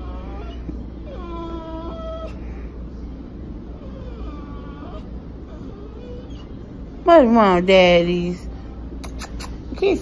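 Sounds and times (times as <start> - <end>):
dog whining: 0.0 - 2.9, 3.6 - 7.0.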